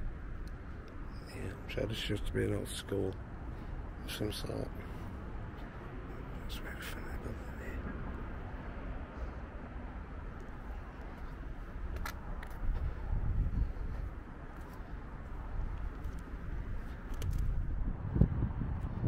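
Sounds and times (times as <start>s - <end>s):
distant traffic rumble: 0.0s - 19.0s
wind on microphone: 11.2s - 14.3s, 15.2s - 19.0s.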